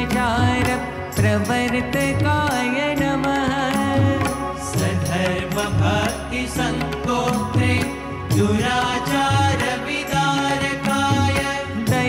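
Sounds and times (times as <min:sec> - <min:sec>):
harmonium: 0:00.0 - 0:12.0.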